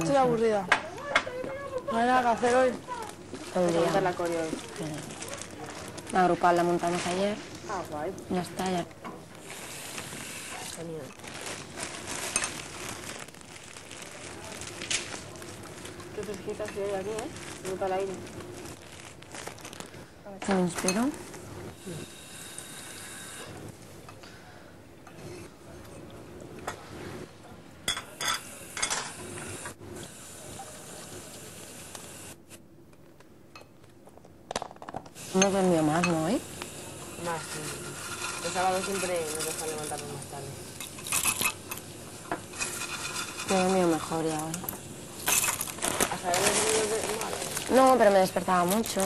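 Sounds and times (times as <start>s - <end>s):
room noise: 0.0s - 49.0s
steady hiss: 9.3s - 12.8s, 21.4s - 25.3s, 28.0s - 32.6s, 35.1s - 49.0s
cutlery and crockery clinking: 27.9s - 29.2s, 37.6s - 40.2s, 40.8s - 41.9s, 42.6s - 46.8s
cutlery clinking on dishes: 27.9s - 29.2s.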